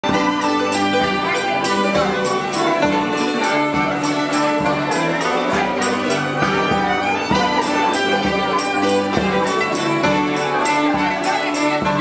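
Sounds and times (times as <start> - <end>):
fiddle playing dance tune: 0.0 - 12.0.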